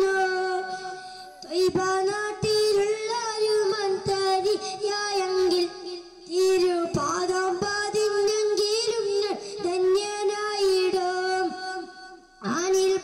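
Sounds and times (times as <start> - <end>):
boy singing devotional song: 0.0 - 13.0
boy breathing: 0.7 - 1.5, 9.3 - 9.7.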